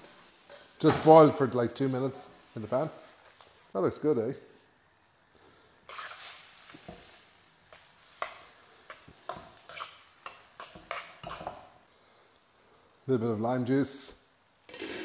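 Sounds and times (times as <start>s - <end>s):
metal utensil scraping a wok: 5.9s - 11.8s.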